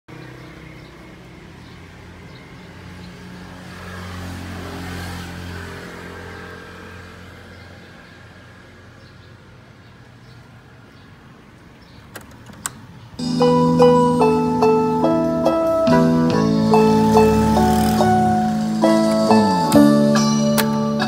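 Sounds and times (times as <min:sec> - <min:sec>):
vehicle engine passing by: 0:00.2 - 0:08.8, 0:13.2 - 0:20.5.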